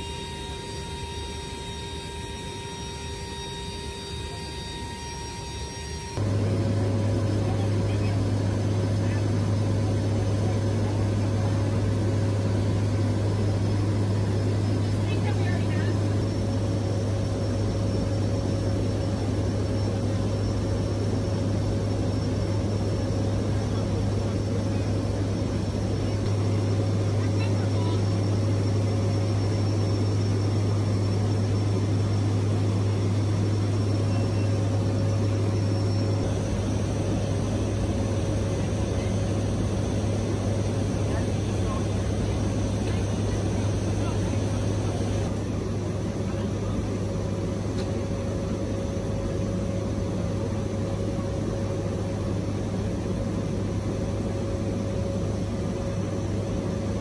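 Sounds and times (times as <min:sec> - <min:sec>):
aircraft engines droning in cabin: 0:00.0 - 0:57.0.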